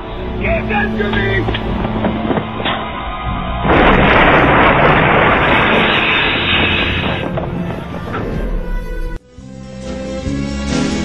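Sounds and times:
film music score: 0.0s - 11.0s
loud explosion: 2.3s - 8.6s.

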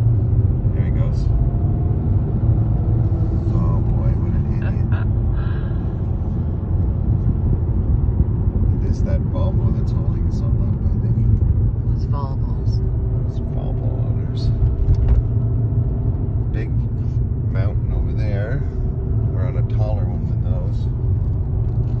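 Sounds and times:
car driving interior rumble: 0.0s - 22.0s.

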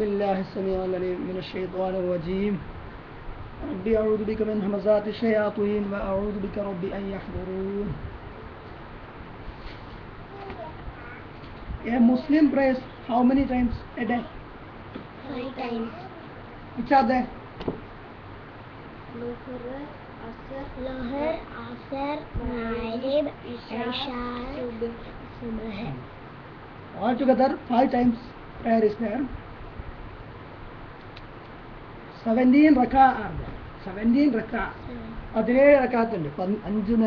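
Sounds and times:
low room noise: 0.0s - 37.0s.

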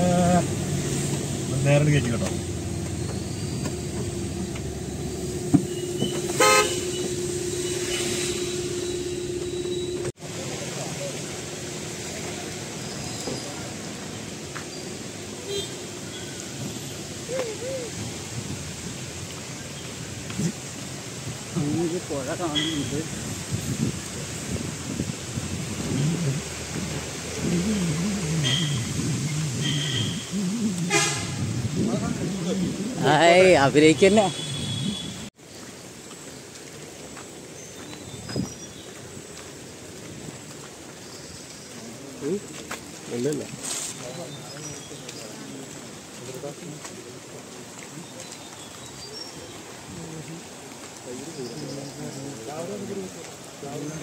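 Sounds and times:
vehicle engine hum: 0.0s - 19.2s, 23.4s - 35.4s
outdoor background noise: 0.0s - 54.0s
tyres on wet road: 0.0s - 54.0s
vehicle horn toot: 5.4s - 10.1s, 15.4s - 16.4s, 22.5s - 23.0s, 29.6s - 31.5s, 34.0s - 35.3s
indistinct voices talking: 25.8s - 35.0s.

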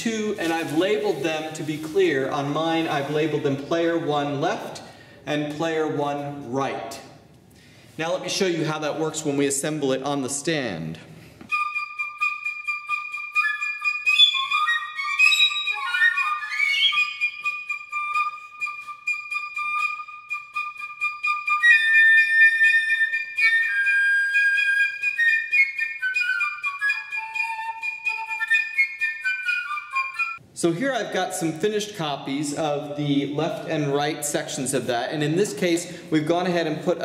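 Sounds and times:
two flutes playing duet: 11.5s - 30.4s.

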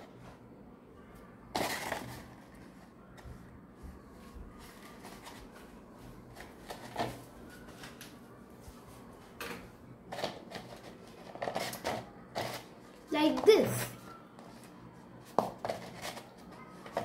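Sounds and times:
paper cone rustling and crinkling: 1.5s - 3.4s, 4.1s - 9.2s, 10.1s - 17.0s.

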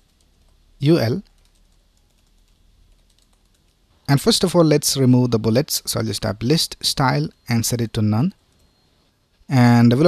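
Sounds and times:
computer keyboard clicks: 1.2s - 3.8s.

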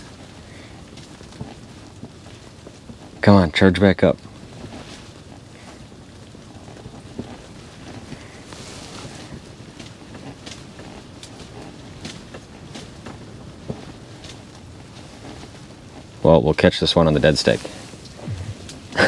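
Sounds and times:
low background hiss: 13.2s - 19.0s.

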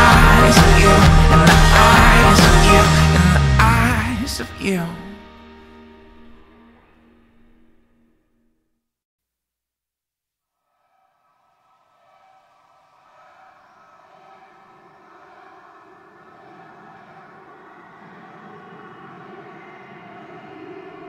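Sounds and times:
ambient background music: 0.0s - 8.0s, 14.2s - 21.0s.

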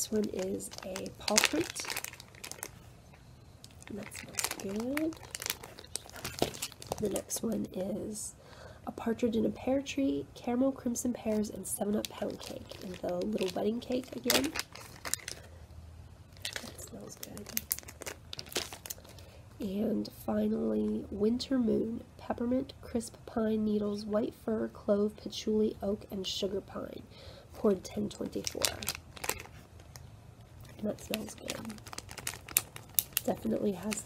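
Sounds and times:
plastic wrapping crinkling: 0.0s - 2.9s, 3.6s - 7.7s, 11.2s - 15.5s, 16.3s - 19.3s, 28.0s - 34.0s.

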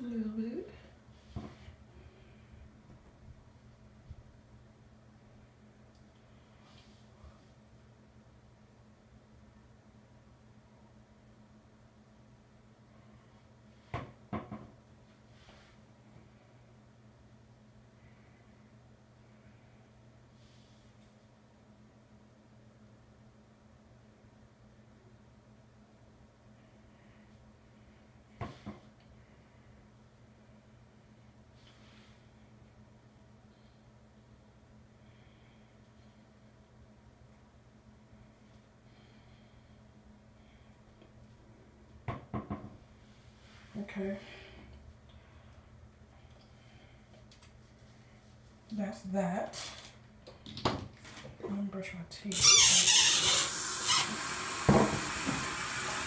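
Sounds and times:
faint low hum: 0.0s - 52.4s.

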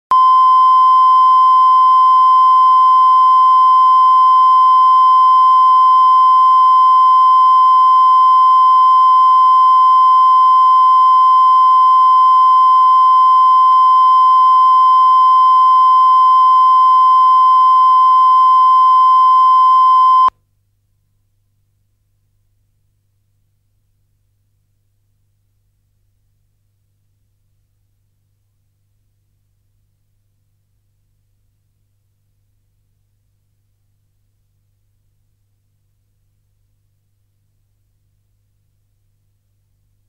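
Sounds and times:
steady test tone beep: 0.1s - 20.3s.

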